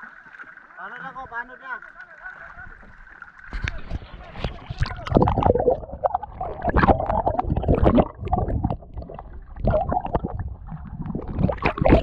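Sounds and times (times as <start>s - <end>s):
water splashing against boat hull: 0.0s - 12.0s
camera dipping into water: 3.4s - 12.0s.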